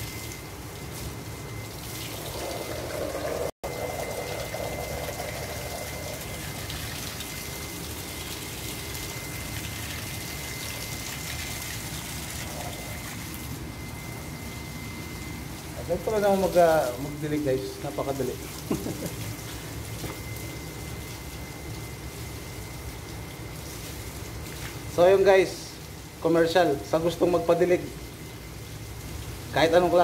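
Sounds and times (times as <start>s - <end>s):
water spraying from garden hose: 0.0s - 30.0s.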